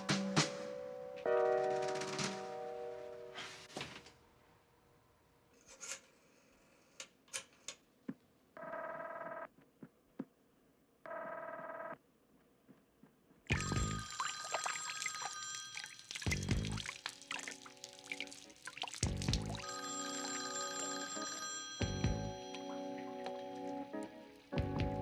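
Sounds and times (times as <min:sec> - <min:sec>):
telephone ringing through handset: 0:13.5 - 0:16.2, 0:19.6 - 0:23.4
telephone bell ringing: 0:13.5 - 0:16.4, 0:19.6 - 0:23.6.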